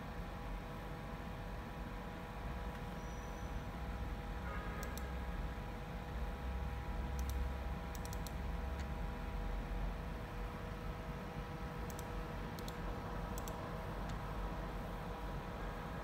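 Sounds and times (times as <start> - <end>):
cooling fans humming: 0.0 - 16.0
computer mouse clicks: 4.8 - 5.1, 7.2 - 8.9, 11.8 - 14.2.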